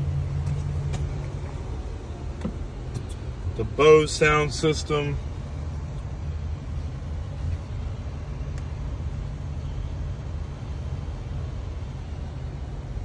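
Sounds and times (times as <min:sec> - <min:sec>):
low rumble in car cabin: 0:00.0 - 0:13.0.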